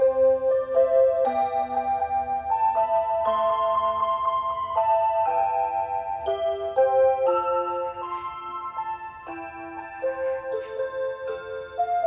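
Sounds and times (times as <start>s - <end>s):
chime-like clock melody: 0.0s - 12.0s.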